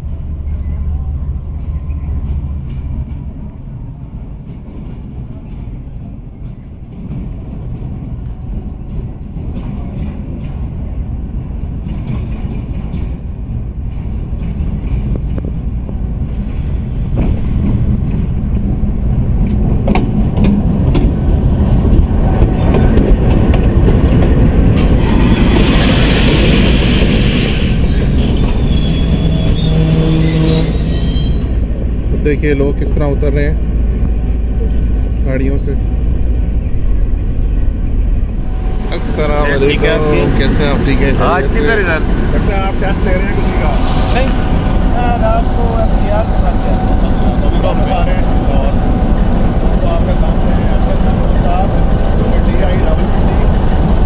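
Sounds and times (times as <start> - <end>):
diesel locomotive engine rumble: 0.0 - 54.0
train brake squeal: 25.0 - 31.6.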